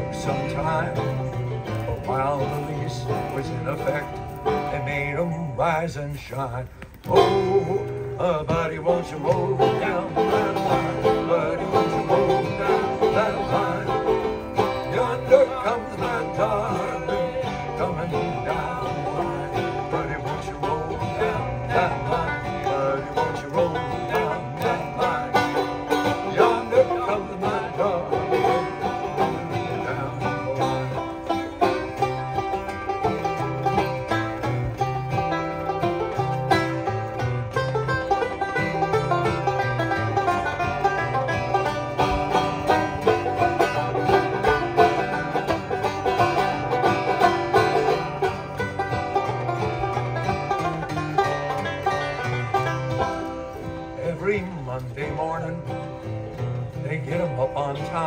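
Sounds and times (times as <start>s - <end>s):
acoustic guitar rhythm: 0.0s - 58.0s
banjo picking: 0.0s - 58.0s.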